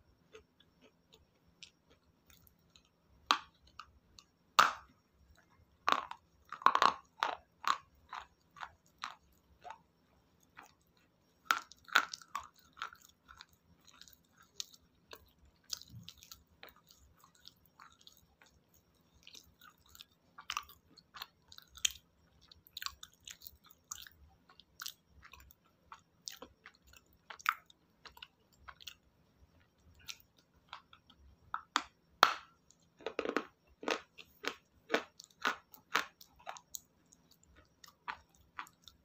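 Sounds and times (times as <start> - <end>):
chewing crunchy mineral: 0.1 - 39.0.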